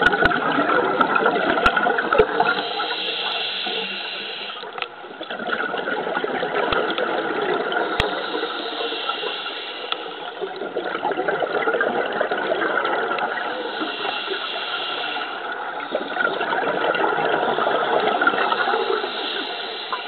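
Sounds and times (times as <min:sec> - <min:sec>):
underwater rushing bubbling water: 0:00.0 - 0:03.1, 0:04.6 - 0:09.4, 0:10.4 - 0:20.0.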